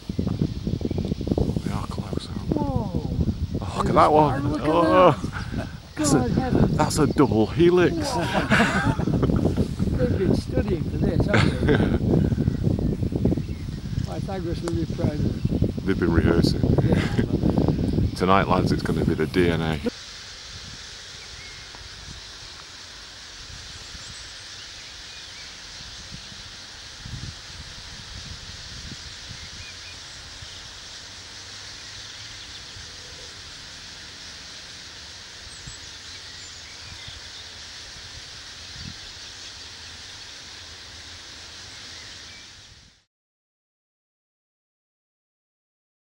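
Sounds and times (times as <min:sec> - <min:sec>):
high hiss: 0:00.0 - 0:43.1
faint bird calls: 0:19.8 - 0:42.8.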